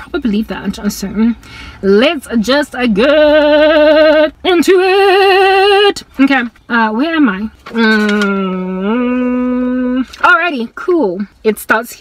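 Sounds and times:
woman humming: 2.9 - 5.9, 7.7 - 10.2.

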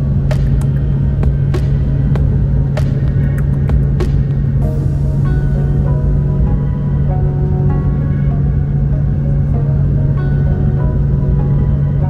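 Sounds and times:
airliner engine drone in cabin: 0.0 - 12.0.

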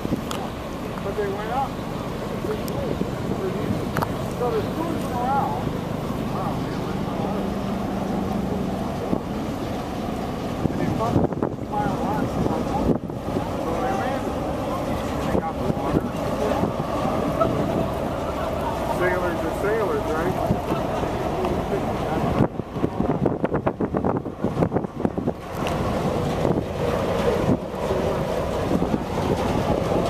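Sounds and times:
large ship rumbling: 0.0 - 30.0
wind buffeting microphone: 0.0 - 30.0
faint voices talking: 0.1 - 23.7, 24.3 - 30.0.

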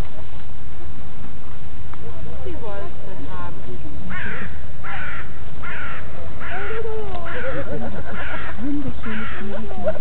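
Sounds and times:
bird harsh calls: 4.1 - 9.6.

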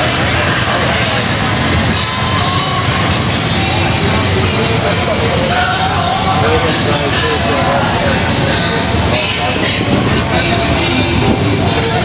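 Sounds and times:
crowd chatter: 0.0 - 12.0
motorcycle engines rumbling: 0.0 - 12.0
music: 0.0 - 12.0.

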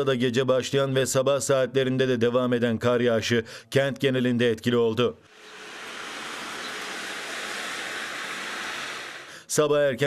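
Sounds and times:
outdoor street ambience hiss: 5.2 - 9.7.

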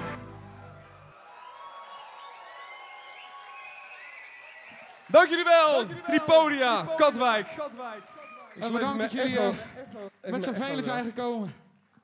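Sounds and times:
audience whistling: 0.0 - 5.1, 7.9 - 8.9
audience applause: 0.0 - 12.0.

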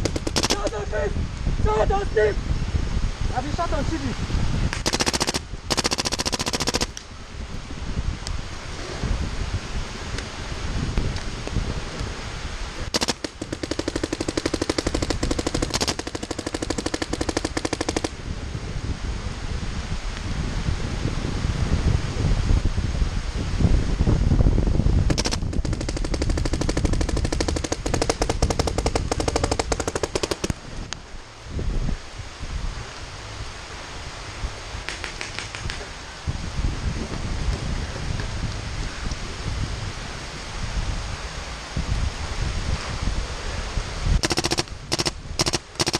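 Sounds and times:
paintball markers rapid firing: 0.0 - 0.8, 4.8 - 7.0, 12.9 - 18.1, 25.1 - 30.6, 44.2 - 45.9.

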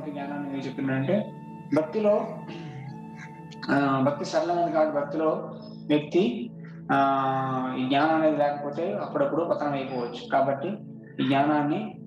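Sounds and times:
background music with held tone: 0.0 - 12.0
person singing: 11.2 - 11.4.

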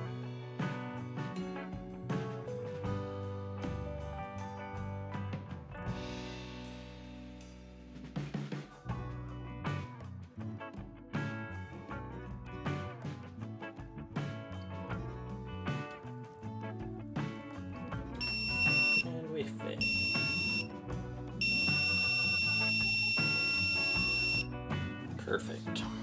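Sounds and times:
background music: 0.0 - 26.0
piezo beeper beeping: 18.2 - 19.1, 19.8 - 20.7, 21.4 - 24.5.

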